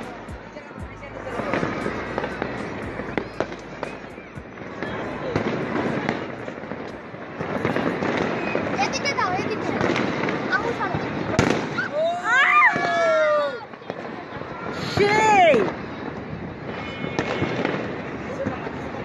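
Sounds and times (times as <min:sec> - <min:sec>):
fireworks cracking and popping: 0:00.0 - 0:12.1, 0:13.6 - 0:19.0
sharp firework bang: 0:07.4 - 0:11.9, 0:16.7 - 0:18.7.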